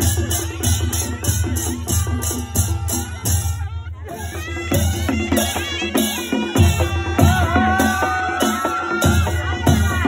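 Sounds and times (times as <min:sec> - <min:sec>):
steady drum beat: 0:00.0 - 0:10.0.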